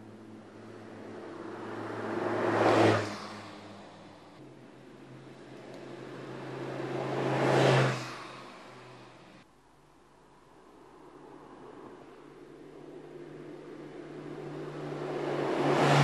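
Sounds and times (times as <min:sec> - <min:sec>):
sports car driving past: 0:12.6 - 0:16.0.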